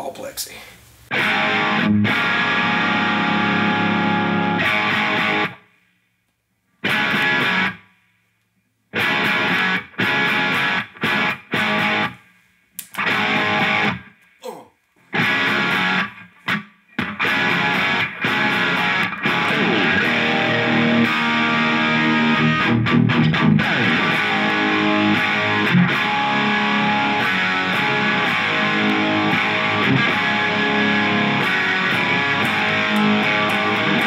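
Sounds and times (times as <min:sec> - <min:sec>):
distorted electric guitar chords: 0:01.1 - 0:05.6, 0:06.8 - 0:07.8, 0:08.9 - 0:12.2, 0:13.0 - 0:14.1, 0:15.1 - 0:34.0.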